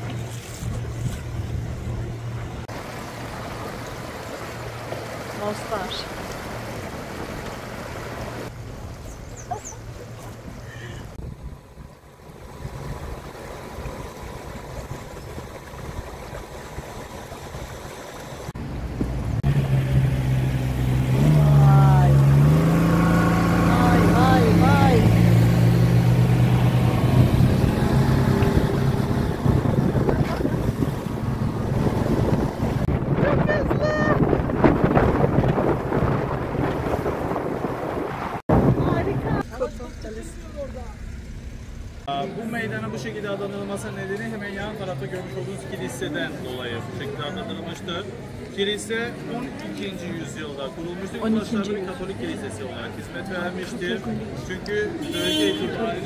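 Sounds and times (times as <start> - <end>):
boat motor running: 0.0 - 43.6
water noise: 0.0 - 56.0
wind noise: 11.1 - 18.0, 26.2 - 39.4.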